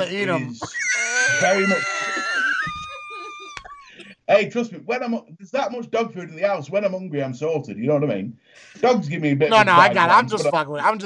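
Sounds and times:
man squealing with laughter: 0.2 - 3.9.

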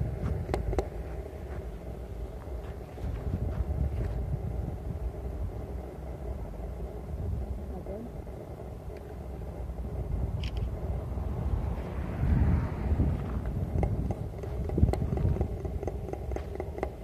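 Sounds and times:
gusty wind buffeting the microphone: 0.0 - 17.0.

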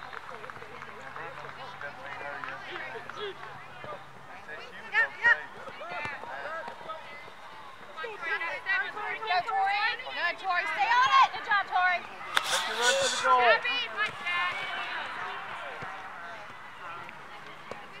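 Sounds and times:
indistinct voices: 12.3 - 13.8
loud shouts: 12.3 - 16.9.

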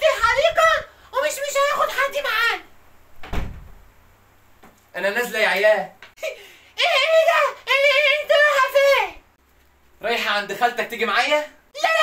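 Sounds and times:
dull thump of wooden door: 3.2 - 3.8.

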